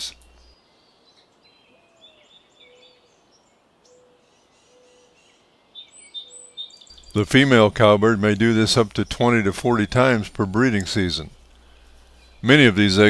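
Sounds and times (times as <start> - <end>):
faint bird chirps: 0.0 - 9.3, 10.0 - 13.0.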